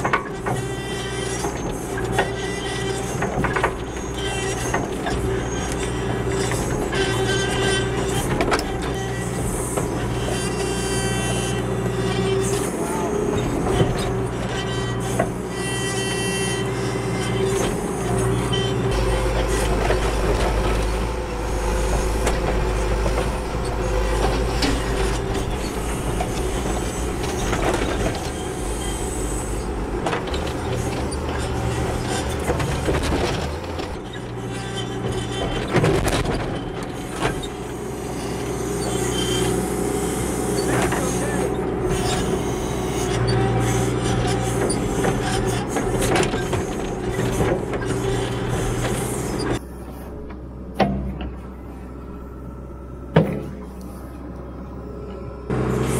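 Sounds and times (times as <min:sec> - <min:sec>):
diesel engine under load: 0:00.0 - 0:55.9.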